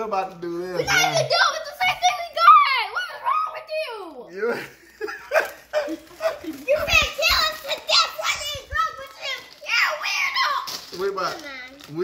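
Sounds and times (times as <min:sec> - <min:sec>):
excited talking: 0:00.0 - 0:12.0.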